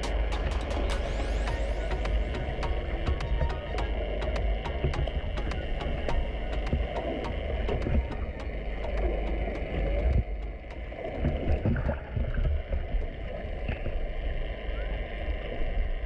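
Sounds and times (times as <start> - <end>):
low rumble of moving water: 0.0 - 16.0
sharp underwater clicks: 2.0 - 13.8.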